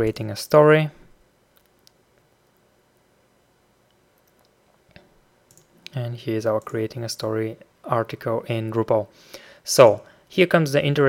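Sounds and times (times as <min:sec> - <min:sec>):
computer mouse clicks: 0:04.2 - 0:06.0.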